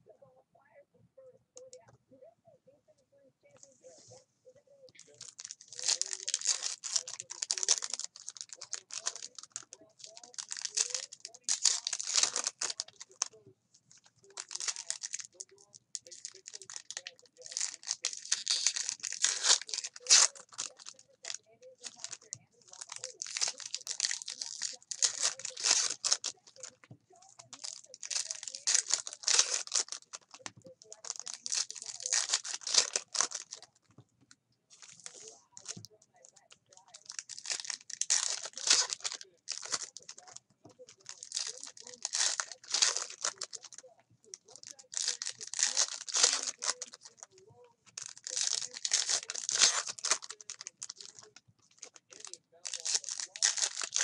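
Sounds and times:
foil wrappers tearing and crinkling: 0:05.0 - 0:13.4, 0:14.0 - 0:33.7, 0:34.7 - 0:54.0.

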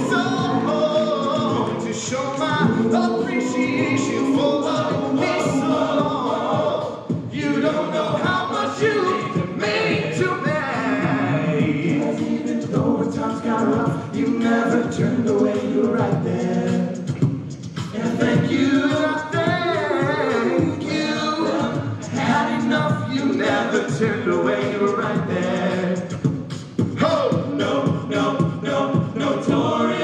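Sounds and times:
male a cappella group singing: 0:00.0 - 0:30.0
vocal percussion beat: 0:00.0 - 0:30.0.

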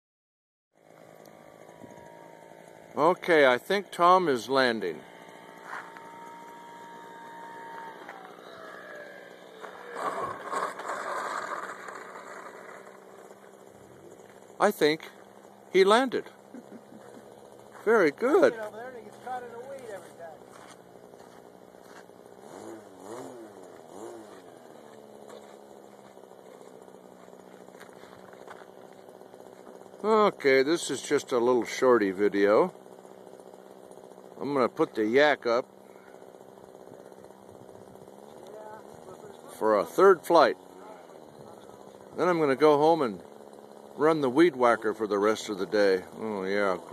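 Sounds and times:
low engine hum: 0:00.8 - 0:46.9.

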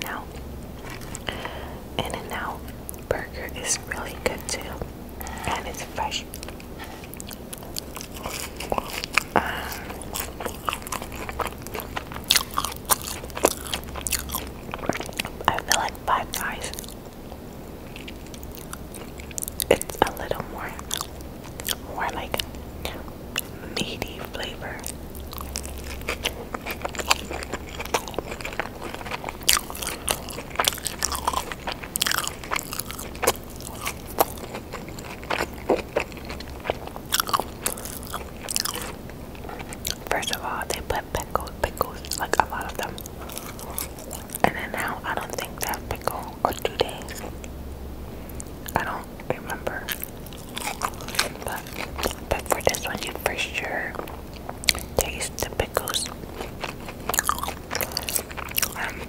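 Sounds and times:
person chewing food: 0:00.0 - 0:47.6, 0:48.2 - 0:59.0.

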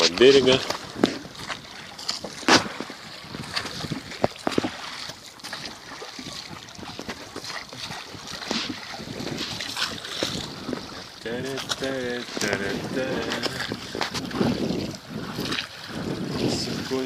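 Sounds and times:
wind on microphone: 0:00.0 - 0:05.0, 0:05.7 - 0:17.0
water splashing against boat hull: 0:00.0 - 0:17.0.

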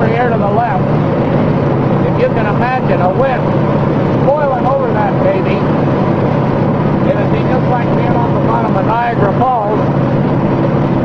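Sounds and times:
aircraft piston engine and propeller: 0:00.0 - 0:11.0.

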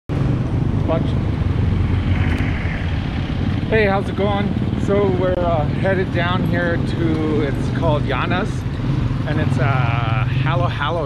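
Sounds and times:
motorcycles running: 0:00.1 - 0:11.0
street traffic: 0:00.1 - 0:11.0.

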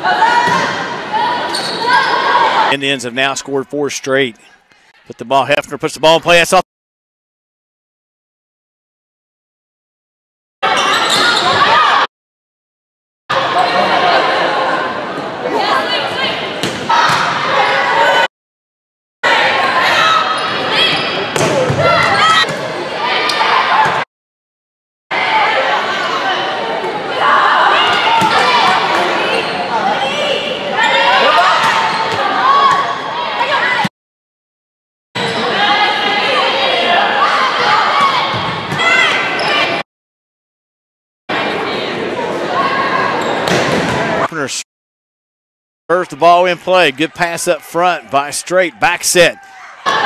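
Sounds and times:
voices in gym: 0:00.0 - 0:06.6, 0:10.6 - 0:12.1, 0:13.3 - 0:18.3, 0:19.3 - 0:24.0, 0:25.1 - 0:33.9, 0:35.3 - 0:39.8, 0:41.3 - 0:43.4, 0:44.0 - 0:44.6, 0:45.9 - 0:50.0
people calling and shouting: 0:41.3 - 0:44.6, 0:45.9 - 0:50.0.

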